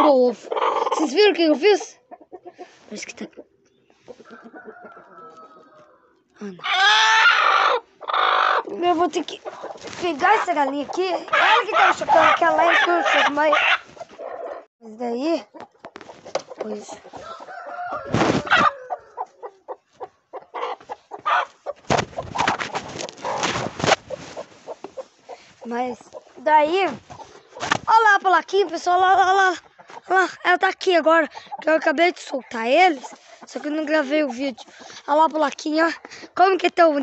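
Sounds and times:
hen squawking and clucking: 0:00.0 - 0:14.7, 0:15.5 - 0:30.2, 0:32.5 - 0:35.2
hen calling: 0:04.1 - 0:14.7.

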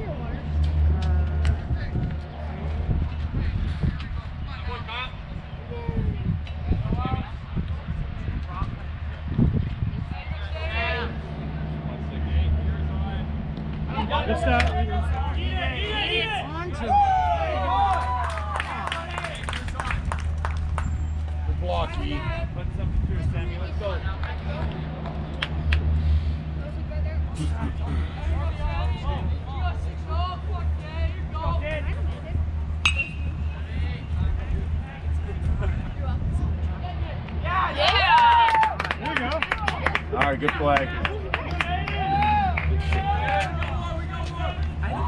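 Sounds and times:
faint voices: 0:00.0 - 0:45.0
low engine drone: 0:00.0 - 0:45.0
metal bat hitting ball: 0:32.8 - 0:33.3.

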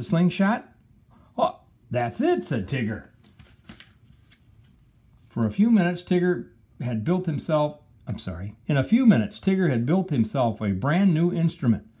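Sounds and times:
book page turning: 0:03.0 - 0:05.4.

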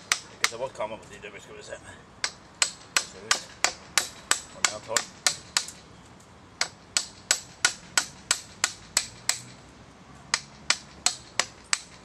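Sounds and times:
hammer striking chisel into wood: 0:00.0 - 0:00.6, 0:02.2 - 0:05.8, 0:06.6 - 0:09.6, 0:10.3 - 0:12.0.

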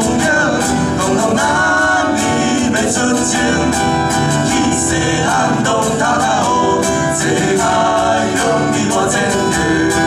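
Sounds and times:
cajon beat: 0:00.0 - 0:10.0
men singing: 0:00.0 - 0:10.0
strummed acoustic guitars: 0:00.0 - 0:10.0.

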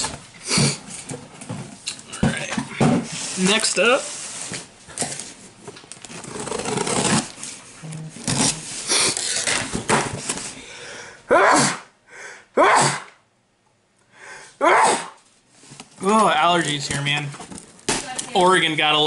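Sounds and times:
rustling and handling noise: 0:00.0 - 0:10.6, 0:15.2 - 0:19.0
man sneezing: 0:11.3 - 0:11.9, 0:12.6 - 0:13.2, 0:14.6 - 0:15.2.

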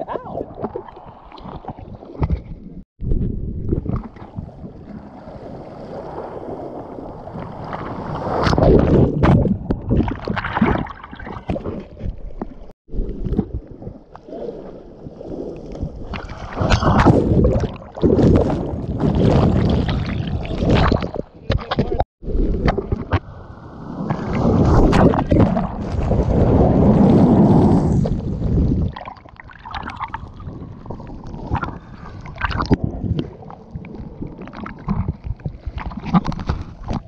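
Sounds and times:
churning turbulent water: 0:15.4 - 0:37.0
wave breaking over camera: 0:22.3 - 0:29.0.

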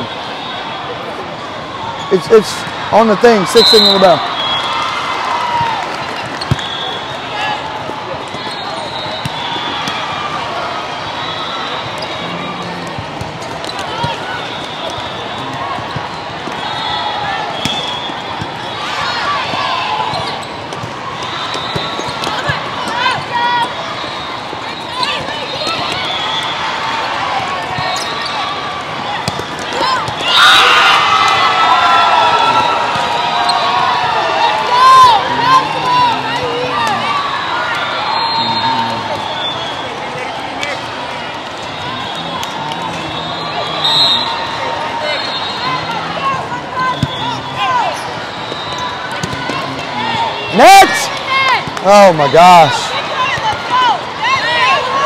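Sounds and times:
crowd voices in hall: 0:00.0 - 0:55.0
sneakers squeaking on court: 0:06.2 - 0:06.9, 0:19.5 - 0:26.3, 0:27.6 - 0:28.4
volleyball contacts: 0:46.9 - 0:51.9.

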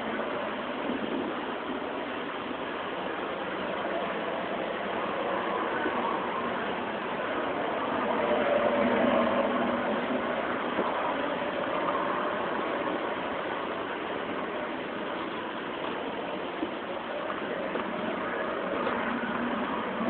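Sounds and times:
engine hum with hiss: 0:00.0 - 0:20.0.

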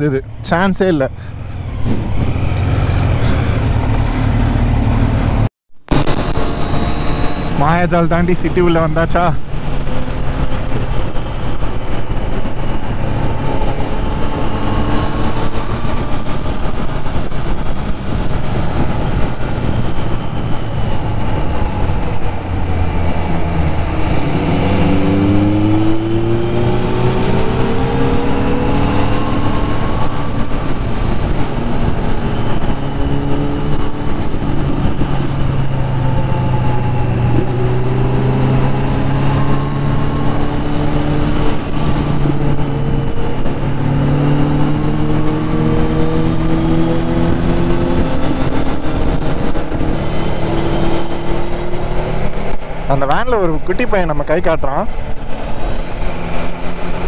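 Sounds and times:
wind noise: 0:01.2 - 0:57.0.

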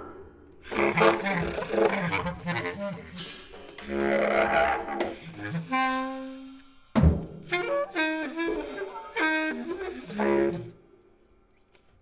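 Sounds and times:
bass clarinet: 0:00.6 - 0:06.8, 0:07.5 - 0:10.8
drum kit and cymbals: 0:00.7 - 0:10.7.

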